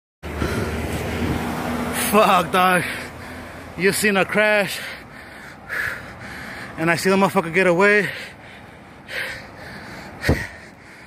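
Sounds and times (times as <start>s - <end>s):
motor vehicle hum: 0.2s - 11.0s.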